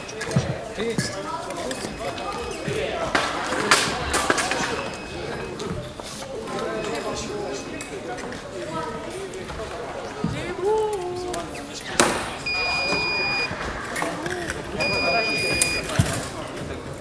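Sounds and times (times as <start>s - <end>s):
indistinct voices chattering: 0.0s - 17.0s.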